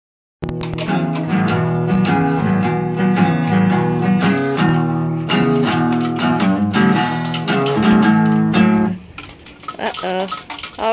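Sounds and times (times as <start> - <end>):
acoustic guitar strumming: 0.4 - 10.4.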